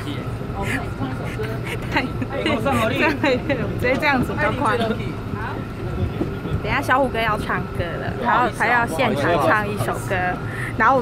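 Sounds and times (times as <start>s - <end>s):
bus and traffic rumble: 0.0s - 11.0s
voices talking: 0.0s - 11.0s.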